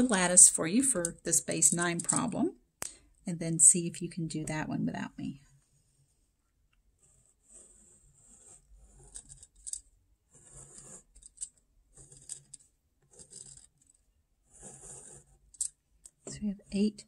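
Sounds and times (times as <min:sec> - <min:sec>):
pen scratching on paper: 0:05.5 - 0:06.3, 0:07.0 - 0:15.5.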